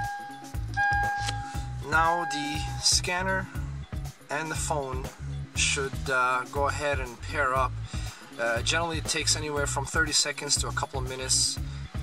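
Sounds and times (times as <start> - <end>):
long held electronic notes: 0.0 - 2.8
pulsing bass beat: 0.0 - 12.0.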